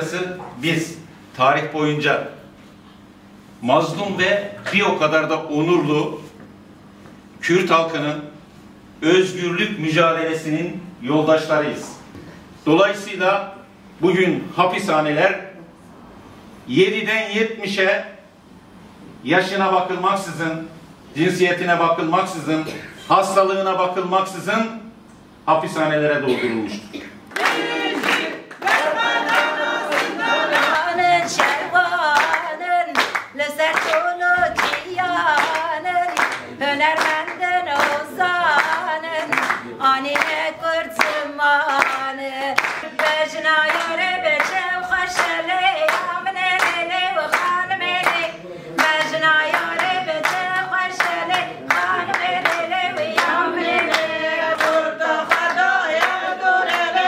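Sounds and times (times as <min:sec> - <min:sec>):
hands clapping in rhythm: 0:27.3 - 0:57.0
women singing in unison: 0:27.4 - 0:39.4, 0:40.1 - 0:57.0.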